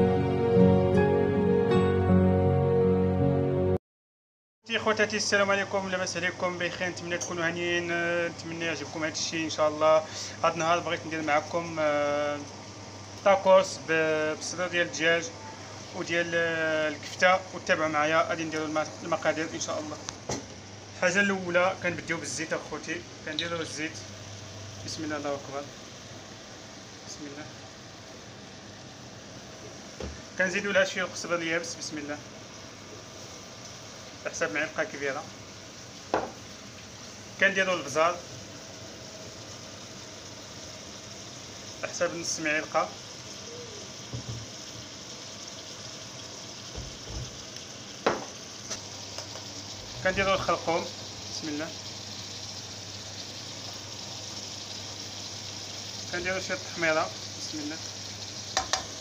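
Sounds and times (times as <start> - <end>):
meat and vegetables sizzling in pan: 4.7 - 59.0.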